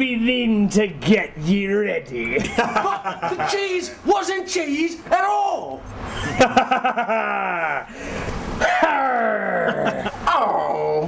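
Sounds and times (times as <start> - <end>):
man crying out: 7.1 - 7.9, 8.6 - 11.0.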